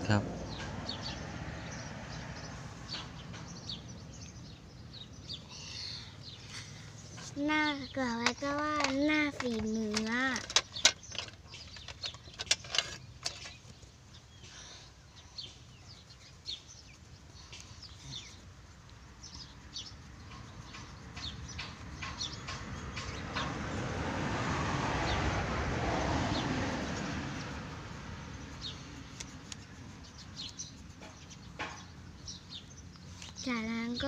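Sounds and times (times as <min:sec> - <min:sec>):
broad rushing noise: 0:17.6 - 0:32.0
pencil scratching on paper: 0:26.4 - 0:31.9.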